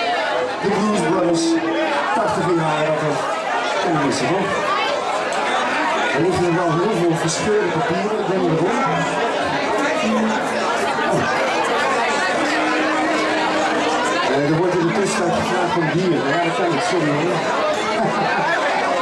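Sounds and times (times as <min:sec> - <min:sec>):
crowd chatter: 0:00.0 - 0:19.0
man speaking over a microphone: 0:00.6 - 0:03.2, 0:03.8 - 0:04.6, 0:06.2 - 0:09.2, 0:14.3 - 0:17.4.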